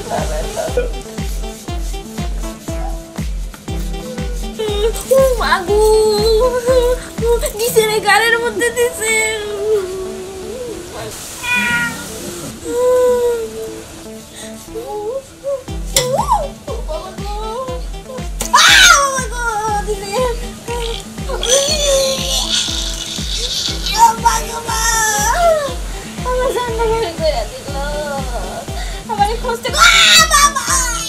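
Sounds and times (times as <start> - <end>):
background music: 0.0 - 31.0
woman wailing: 3.8 - 7.5, 9.4 - 13.8, 14.8 - 26.7, 29.6 - 31.0
cat meowing: 11.4 - 12.1.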